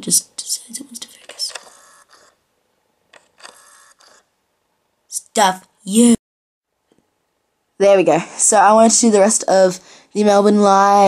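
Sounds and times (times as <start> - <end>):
camera autofocus motor whirring: 1.5 - 2.4, 3.2 - 4.3.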